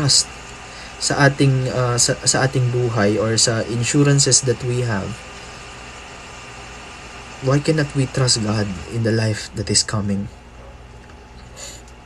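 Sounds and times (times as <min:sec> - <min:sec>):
room noise hum and hiss: 0:00.0 - 0:12.0.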